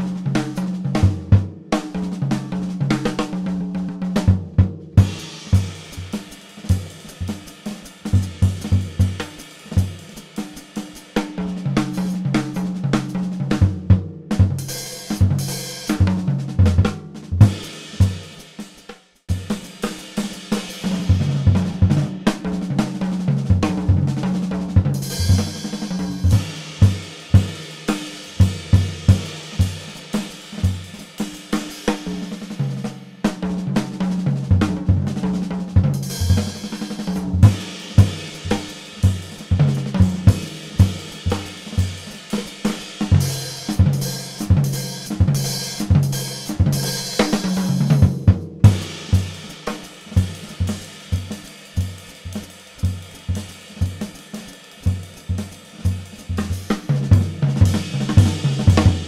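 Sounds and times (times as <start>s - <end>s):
fast jazz drumming: 0.0s - 59.0s.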